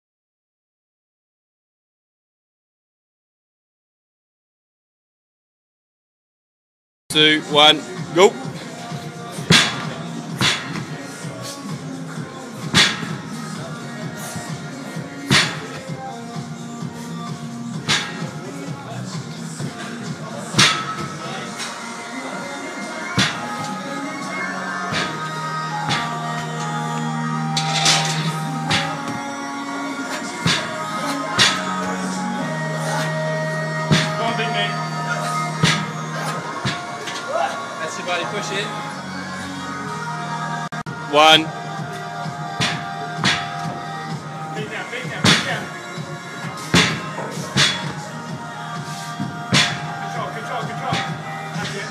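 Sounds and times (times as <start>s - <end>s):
background music: 7.1s - 51.9s.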